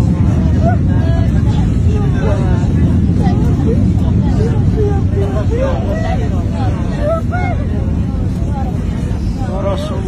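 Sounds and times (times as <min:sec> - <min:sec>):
airliner cabin rumble: 0:00.0 - 0:10.0
passengers crying out: 0:00.0 - 0:10.0.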